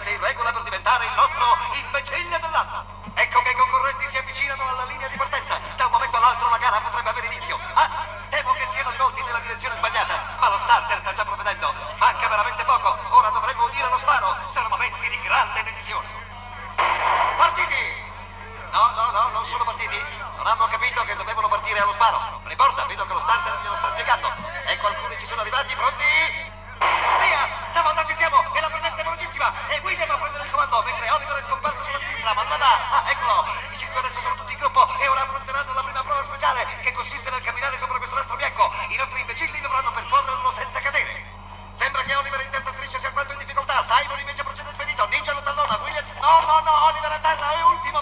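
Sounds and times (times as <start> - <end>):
steady low hum: 0.0 - 48.0
men chattering and exclaiming: 11.3 - 35.3.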